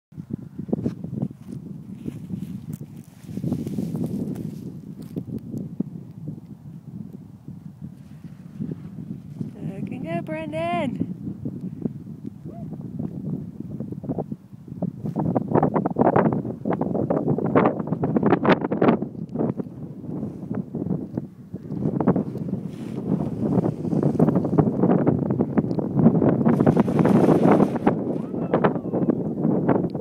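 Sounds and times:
wind buffeting microphone: 0.1 - 30.0.

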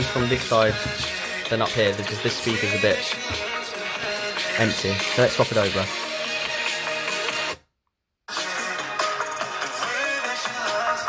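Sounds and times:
guitar song from phone speaker: 0.0 - 7.6.

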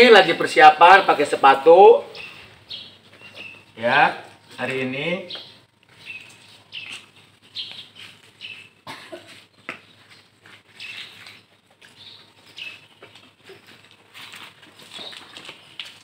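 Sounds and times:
small birds chirping: 0.0 - 16.0.

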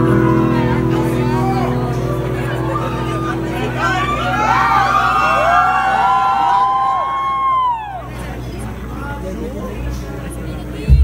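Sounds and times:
electric guitars bending notes: 0.0 - 8.4
low stage hum: 0.0 - 11.0.

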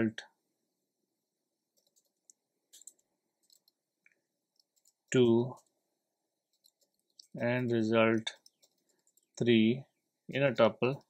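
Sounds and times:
faint keyboard clicks: 1.7 - 5.7, 6.5 - 9.4.

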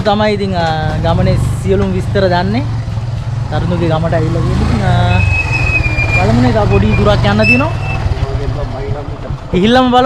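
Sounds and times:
men talking: 0.0 - 5.4, 6.1 - 10.0
motorcycle engine idling: 0.0 - 10.0.

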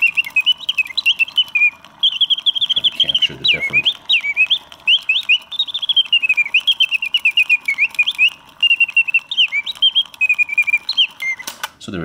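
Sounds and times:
mechanical birdsong chirps and whistles: 0.0 - 11.8.

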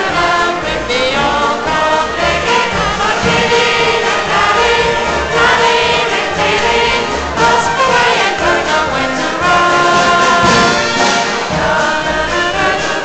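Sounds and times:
ensemble with violins playing: 0.0 - 13.0.

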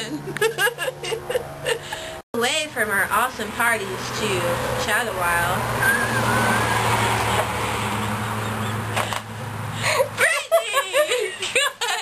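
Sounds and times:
woman laughing breathlessly: 0.6 - 2.2, 8.2 - 12.0
high squeal: 5.7 - 7.6.

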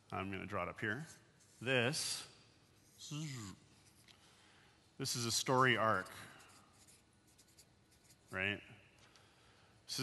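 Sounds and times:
marker drawing on paper: 5.8 - 8.4.

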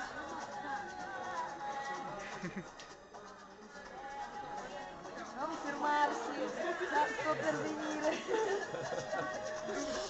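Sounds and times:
background music: 0.0 - 10.0
voices talking over each other: 3.4 - 10.0.

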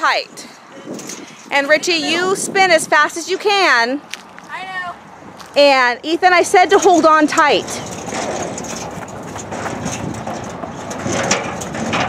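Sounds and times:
merry-go-round rolling rumble: 7.0 - 12.0.

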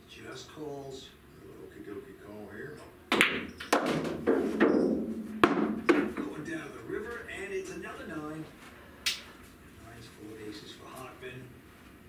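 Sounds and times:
ball dropping into pocket: 3.1 - 6.3
cue tip hitting cue ball: 3.1 - 6.3
billiard balls clacking: 3.1 - 6.4.

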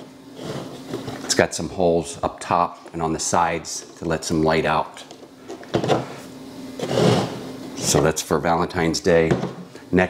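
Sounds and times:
plastic rubbing on base: 5.1 - 8.1.

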